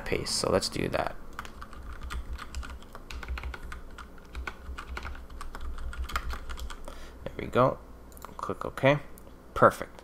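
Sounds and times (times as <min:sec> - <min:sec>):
low steady hum: 0:00.0 - 0:10.0
computer keyboard typing: 0:01.3 - 0:06.9.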